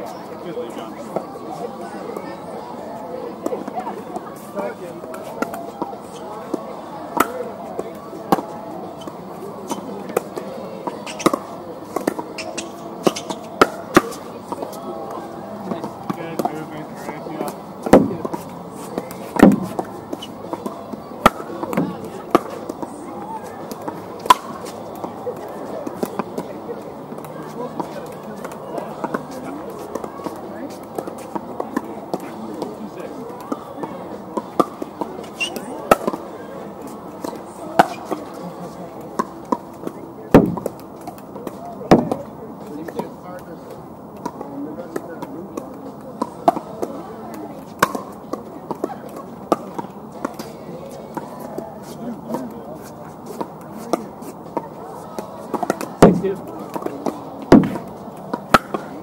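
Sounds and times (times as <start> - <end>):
indistinct talk of players: 0.0 - 59.0
paddles hitting pickleballs: 3.4 - 59.0.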